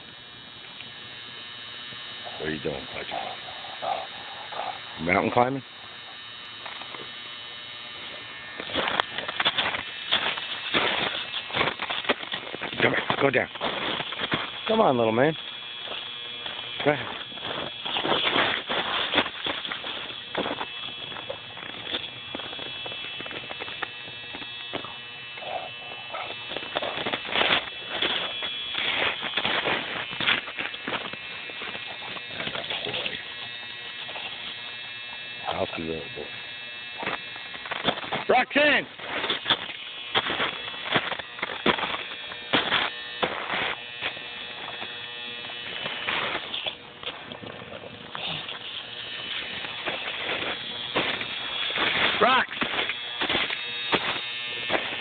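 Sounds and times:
electrical buzz: 0.0s - 55.0s
footsteps crunching through snow: 7.8s - 55.0s
man speaking: 16.8s - 17.1s, 38.3s - 38.9s, 52.2s - 52.5s.

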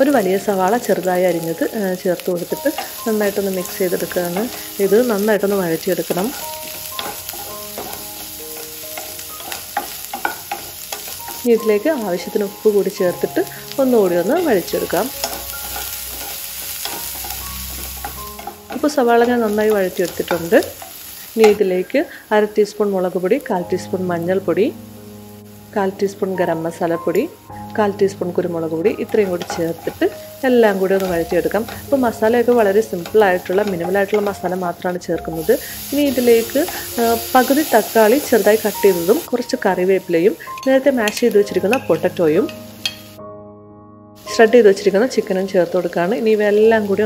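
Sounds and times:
woman talking: 0.0s - 6.4s, 11.4s - 15.1s, 18.8s - 20.8s, 21.4s - 24.8s, 25.8s - 42.5s, 44.3s - 47.0s
onions sizzling in a pan: 0.0s - 43.2s, 44.2s - 47.0s
wooden spatula stirring: 2.2s - 21.0s, 28.9s - 39.2s.

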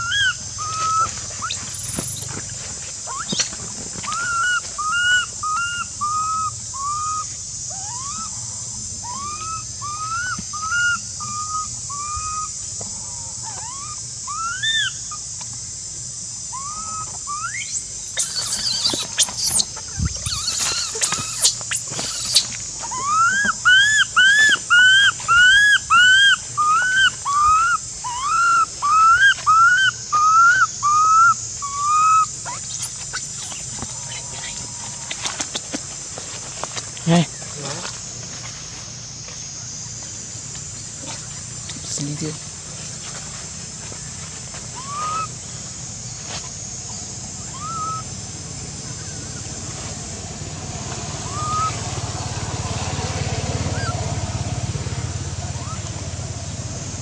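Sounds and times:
infant monkey whistle-like calls: 0.0s - 2.3s, 3.1s - 12.6s, 13.2s - 15.2s, 16.5s - 35.4s, 44.7s - 45.6s, 46.3s - 48.2s, 51.2s - 51.9s, 53.6s - 54.1s, 55.2s - 56.6s.

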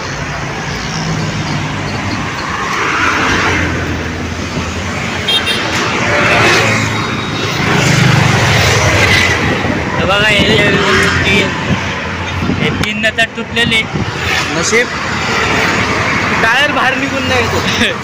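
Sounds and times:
vehicles passing on road: 0.0s - 18.0s.

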